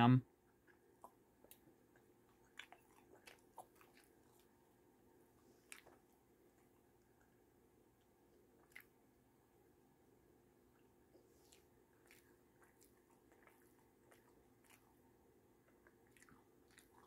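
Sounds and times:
person chewing food: 0.4 - 17.0.

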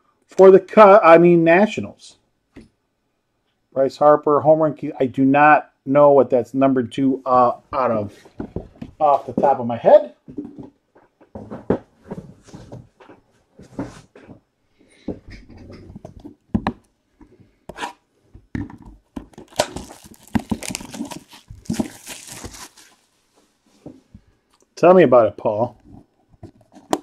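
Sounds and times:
cardboard knocks and scrapes: 11.3 - 14.4
cardboard tearing and crinkling: 19.4 - 23.1.

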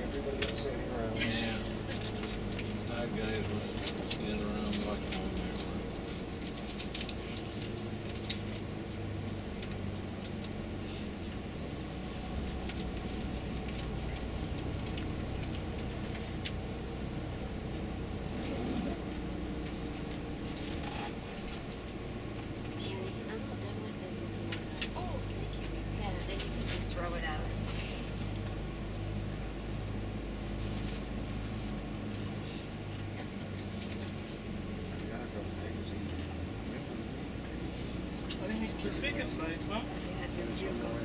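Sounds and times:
coach engine and road noise: 0.0 - 41.0.

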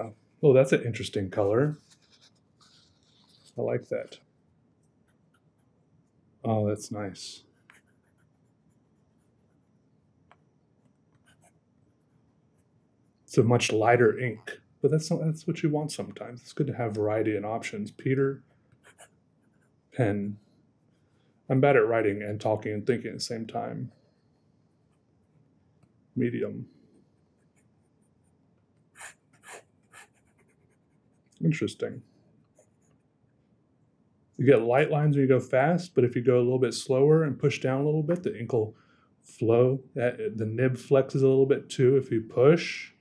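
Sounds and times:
pen nib scratching on paper: 1.7 - 3.6, 7.6 - 9.7, 18.7 - 19.8, 28.9 - 31.3.

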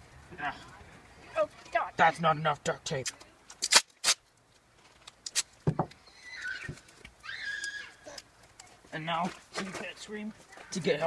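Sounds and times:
duct tape ripping: 3.0 - 5.6
short high squeaks: 5.4 - 8.2.

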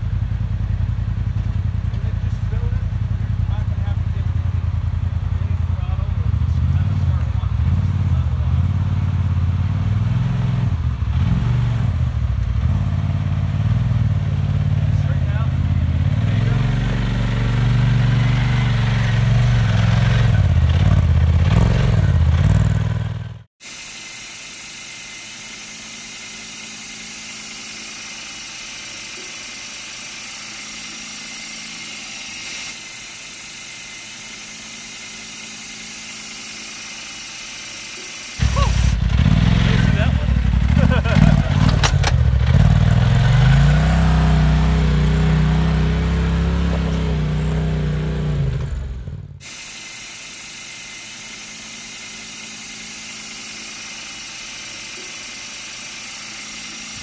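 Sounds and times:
off-road vehicle engine under load: 0.0 - 23.6, 24.7 - 57.0.

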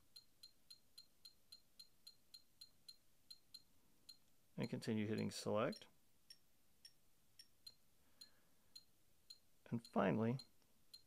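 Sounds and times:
metronome ticking: 0.0 - 11.0.

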